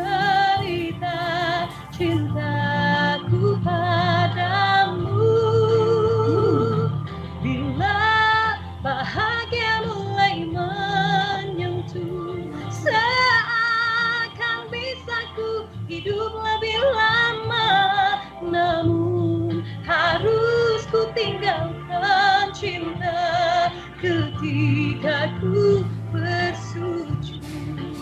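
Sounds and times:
low backing accompaniment: 0.0s - 28.0s
woman singing a slow ballad: 0.0s - 28.0s.

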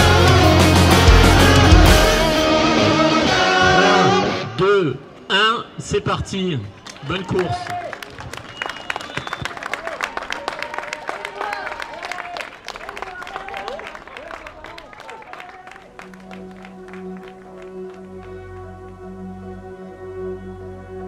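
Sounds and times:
steady music: 0.0s - 4.6s, 15.9s - 21.0s
spectators clapping and cheering: 6.7s - 19.0s.

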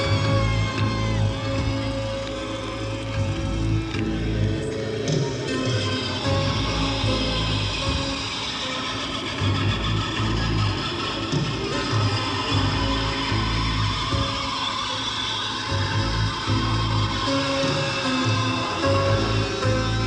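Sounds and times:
heavy bass notes: 0.0s - 8.3s, 9.4s - 14.7s, 15.7s - 20.0s
live rock band playing: 0.0s - 20.0s.

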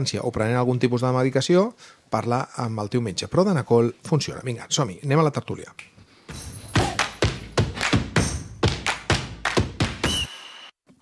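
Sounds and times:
heavy percussive thuds: 6.3s - 10.3s
music: 6.3s - 10.3s.

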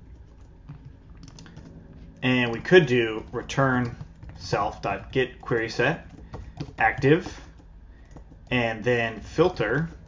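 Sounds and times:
keyboard keystrokes: 0.0s - 10.0s.

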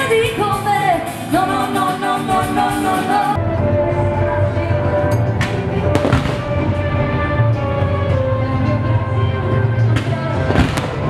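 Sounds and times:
fireworks bangs: 5.9s - 6.8s, 10.4s - 11.0s.

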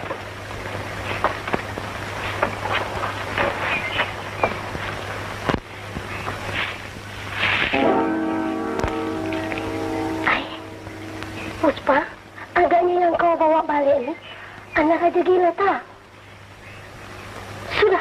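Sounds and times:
soundtrack crackle: 0.0s - 12.3s
steady low hum: 0.0s - 18.0s
film music: 7.7s - 12.4s
held chord: 7.7s - 12.4s.

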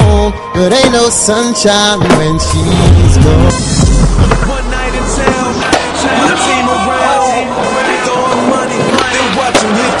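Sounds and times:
song playing: 0.0s - 10.0s
skateboard clack: 8.0s - 10.0s.

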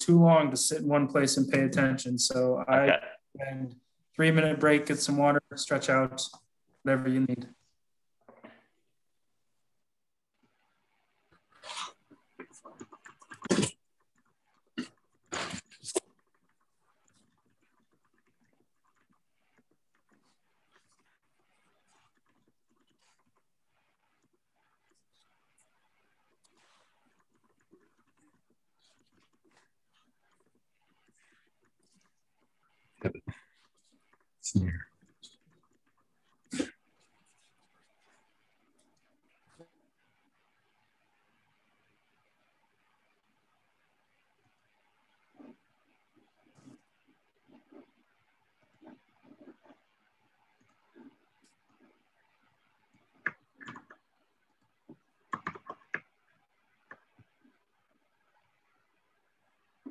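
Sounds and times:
faint household room noise: 0.0s - 59.9s.

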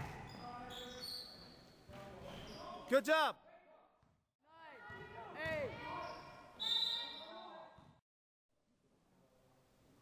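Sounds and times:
basketball shoes squeaking: 0.0s - 2.8s.

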